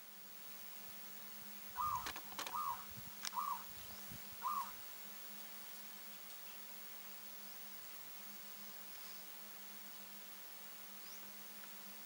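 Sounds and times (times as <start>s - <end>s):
dove calling: 1.8s - 4.8s
sharp clicks: 1.9s - 2.6s.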